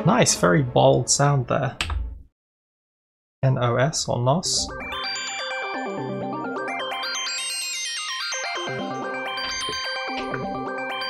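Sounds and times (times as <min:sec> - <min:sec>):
bright high synth tones: 0:07.0 - 0:11.0.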